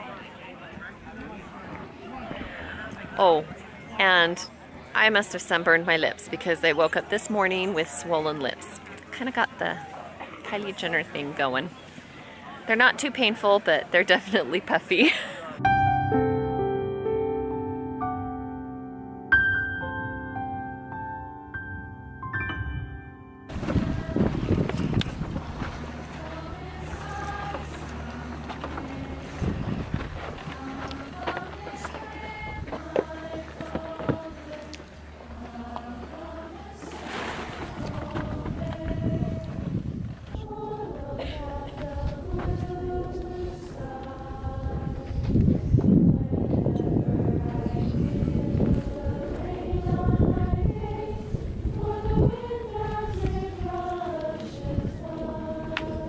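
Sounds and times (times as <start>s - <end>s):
piano music: 15.6s - 23.6s
wind gusting on microphone: 23.5s - 27.5s, 28.9s - 30.7s, 37.3s - 56.0s
distant group of voices singing: 23.5s - 56.0s.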